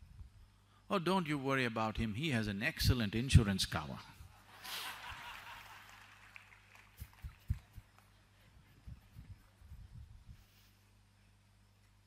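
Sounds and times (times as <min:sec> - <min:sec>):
audience laughing: 0:04.5 - 0:06.4.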